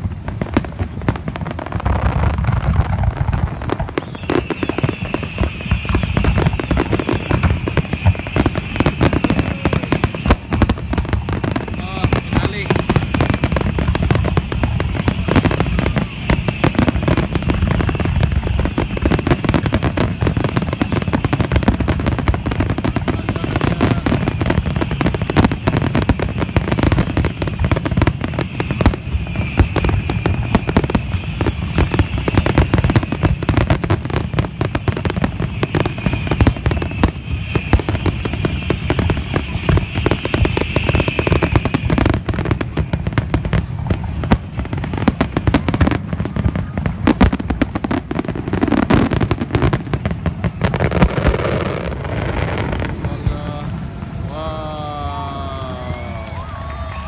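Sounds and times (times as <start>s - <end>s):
fireworks bursting with bangs and crackles: 0.0s - 57.0s.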